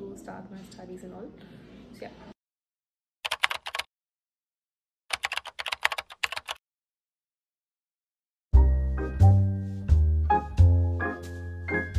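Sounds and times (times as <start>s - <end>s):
keyboard keys clicking: 3.2s - 3.9s, 5.1s - 6.6s.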